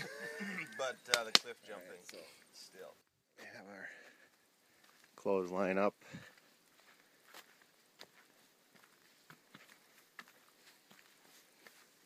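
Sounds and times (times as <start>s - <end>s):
footsteps on dirt path: 3.4s - 12.0s.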